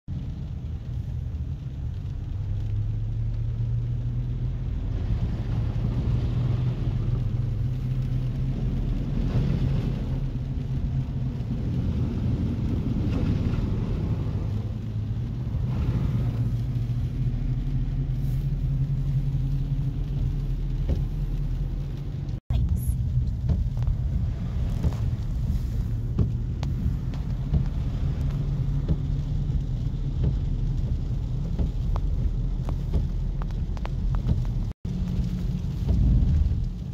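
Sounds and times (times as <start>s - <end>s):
car engine and road drone: 0.1s - 36.9s
tyres hissing on wet pavement: 0.3s - 36.9s.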